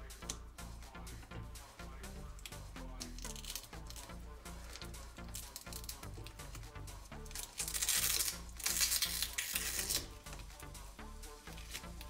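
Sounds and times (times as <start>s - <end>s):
background music with bass beat: 0.0s - 12.0s
adhesive tab peeling: 2.4s - 10.6s, 11.5s - 12.0s.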